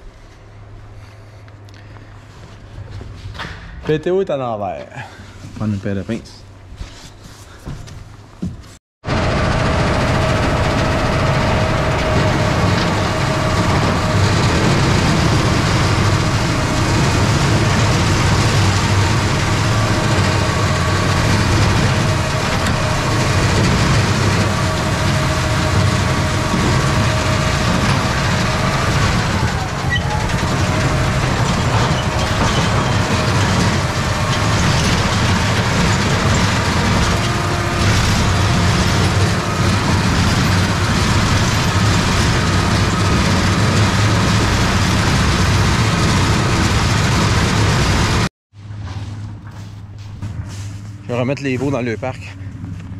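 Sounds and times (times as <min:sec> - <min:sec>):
tractor engine running: 0:09.0 - 0:52.9.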